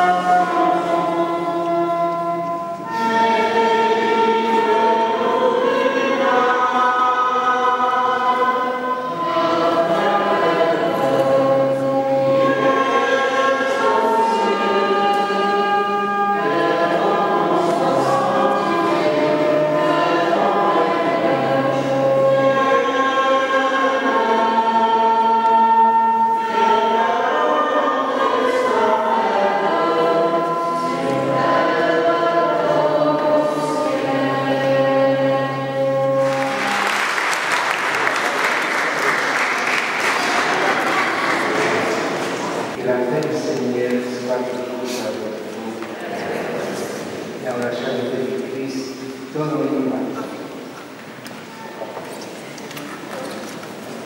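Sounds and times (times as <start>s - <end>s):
choir singing a slow hymn: 0.0s - 54.0s.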